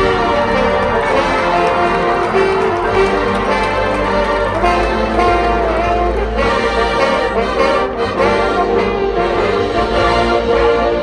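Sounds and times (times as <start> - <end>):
marching band playing chords: 0.0 - 11.0.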